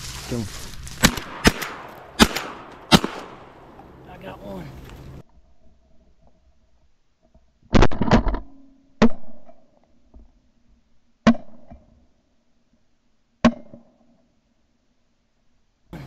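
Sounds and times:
shotgun shots: 1.0 - 3.7.

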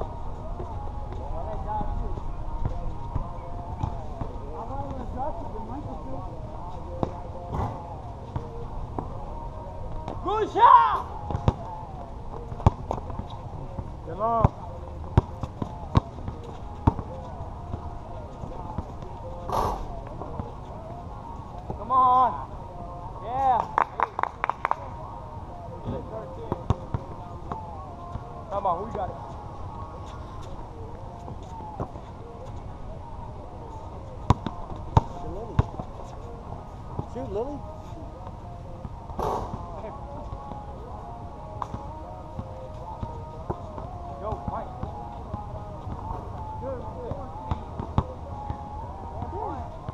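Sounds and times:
player shouting: 10.2 - 11.1
basketball bouncing on asphalt: 12.4 - 13.2.

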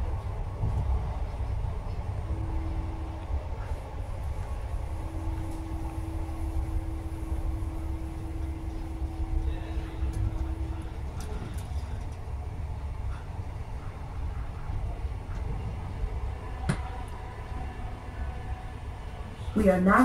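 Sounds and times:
steady hum: 0.0 - 20.0
train wheels rumbling on track: 0.0 - 20.0.

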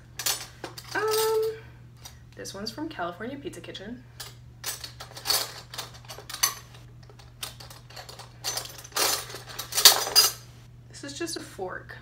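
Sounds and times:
metal cutlery clinking: 4.2 - 10.4.

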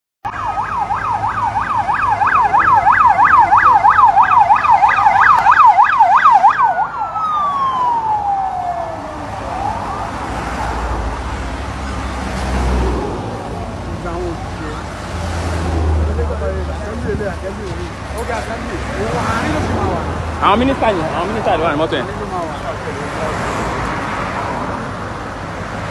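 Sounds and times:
vehicle siren yelping: 0.3 - 11.0
vehicles passing by: 0.3 - 25.9.

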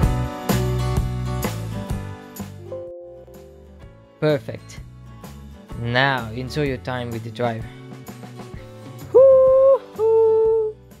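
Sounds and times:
quiet background music: 2.6 - 11.0.

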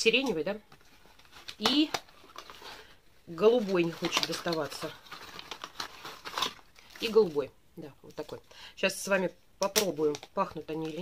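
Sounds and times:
packaging crinkling and rustling: 0.2 - 7.5.

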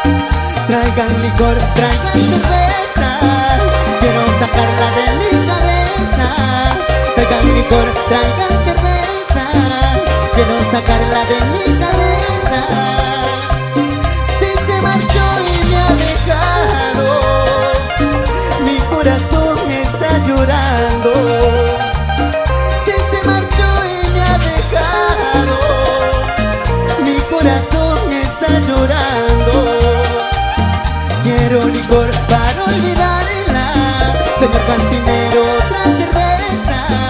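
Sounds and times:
heavy repeating bass notes: 0.0 - 37.0
live cumbia band playing: 0.0 - 37.0
melodic lead line: 0.0 - 37.0
steady percussion: 0.0 - 37.0.

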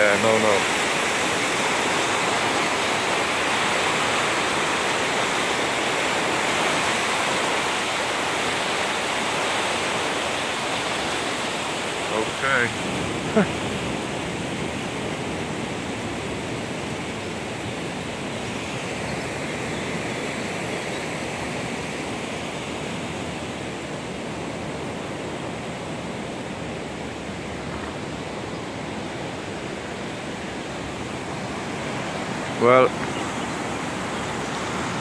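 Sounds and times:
river rushing: 0.0 - 35.0.

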